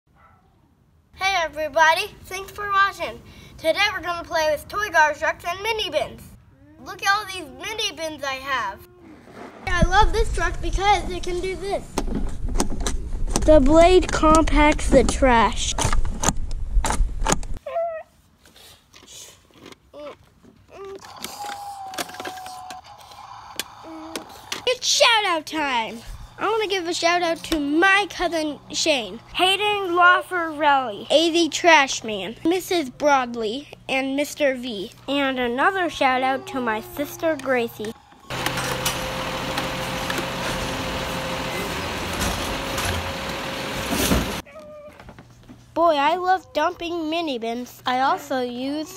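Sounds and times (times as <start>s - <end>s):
plastic toy clicking and clattering: 21.0s - 24.7s
faint steady hum: 21.0s - 38.3s
garbage truck hiss: 38.3s - 44.4s.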